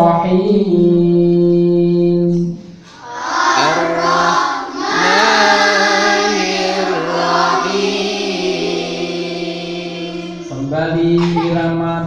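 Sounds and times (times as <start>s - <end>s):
man reciting through a microphone: 0.0s - 2.7s, 3.6s - 7.6s, 8.8s - 12.0s.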